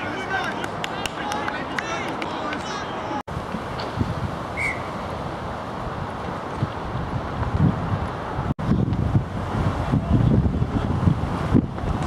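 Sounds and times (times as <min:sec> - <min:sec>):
players shouting: 0:00.0 - 0:03.2
wind rumbling on microphone: 0:03.3 - 0:12.0.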